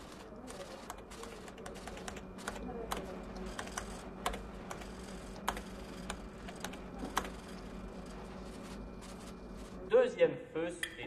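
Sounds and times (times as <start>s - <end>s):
computer keyboard typing: 0.0s - 9.8s.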